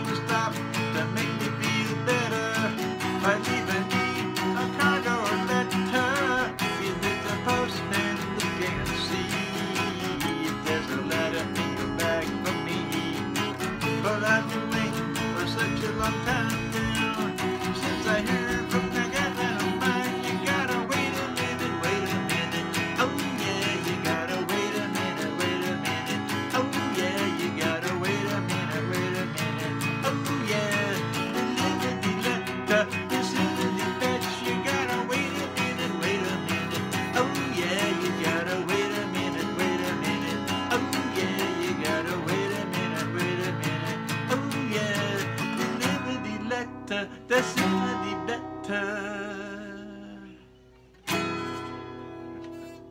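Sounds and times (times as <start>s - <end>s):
acoustic guitar strumming: 0.0s - 52.9s.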